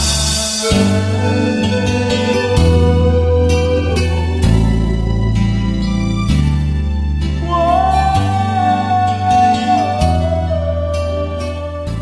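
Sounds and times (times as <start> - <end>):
instrumental ballad backing track: 0.0 - 12.0.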